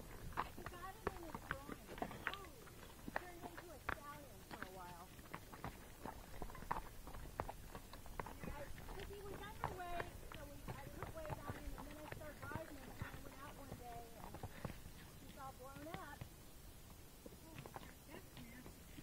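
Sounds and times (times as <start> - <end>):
horse hooves clopping on dirt: 0.0 - 19.0
people talking: 0.5 - 5.1, 8.4 - 16.2, 17.4 - 19.0.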